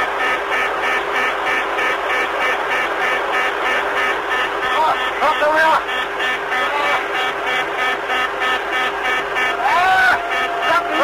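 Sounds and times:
fast repeating warning beep: 0:00.0 - 0:11.0.

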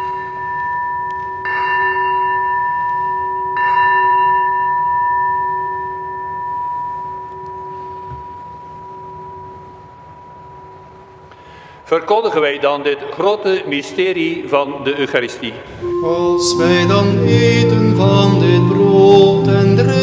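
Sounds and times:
bell ringing: 0:00.0 - 0:11.2, 0:15.8 - 0:20.0.

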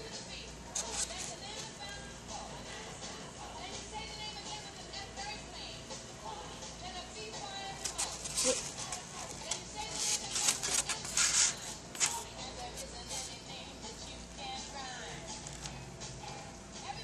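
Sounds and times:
faint background music: 0:00.0 - 0:17.0
styrofoam squeaking and scratching: 0:00.8 - 0:01.4, 0:07.8 - 0:13.3.

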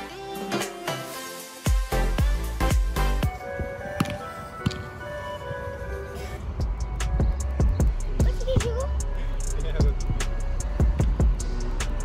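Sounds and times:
music with heavy bass beat: 0:00.0 - 0:03.7, 0:06.6 - 0:12.0.

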